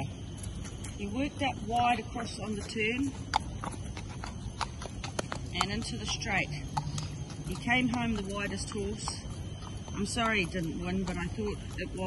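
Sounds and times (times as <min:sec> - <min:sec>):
hooves clip-clopping on pavement: 0:00.0 - 0:12.0.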